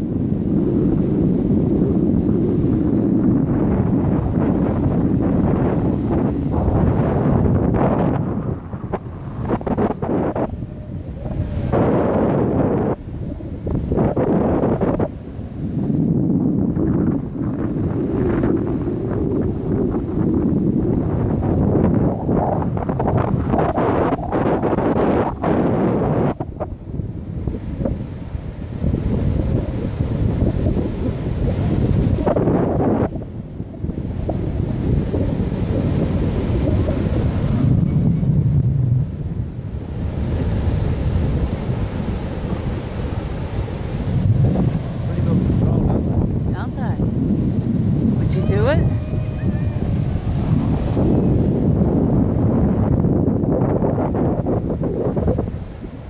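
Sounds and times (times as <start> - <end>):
wind buffeting microphone: 0.0 - 56.0
breaking surf: 27.4 - 56.0.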